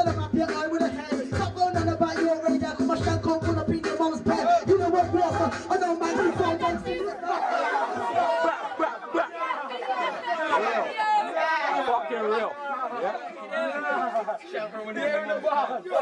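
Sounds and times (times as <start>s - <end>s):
music with deep bass beat: 0.0s - 6.9s
young men chattering: 0.0s - 16.0s.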